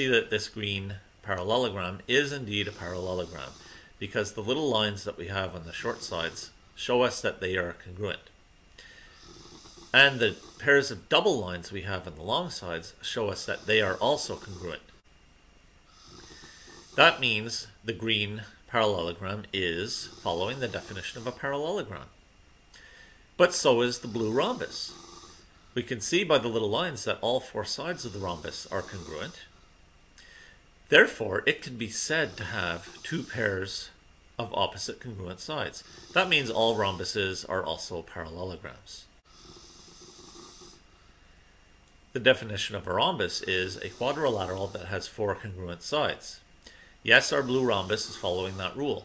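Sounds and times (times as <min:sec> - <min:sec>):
person speaking: 0:00.0 - 0:08.3, 0:10.0 - 0:14.9, 0:17.0 - 0:22.2, 0:23.4 - 0:25.0, 0:25.8 - 0:29.5, 0:30.9 - 0:39.1, 0:42.1 - 0:46.4, 0:47.0 - 0:49.0
person breathing in: 0:03.2 - 0:04.0, 0:08.8 - 0:10.6, 0:15.9 - 0:17.0, 0:22.7 - 0:23.3, 0:30.2 - 0:30.7, 0:46.6 - 0:47.0.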